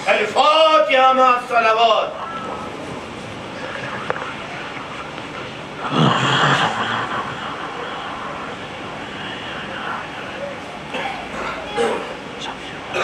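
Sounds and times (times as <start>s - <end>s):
murmur of congregation: 0.0s - 13.0s.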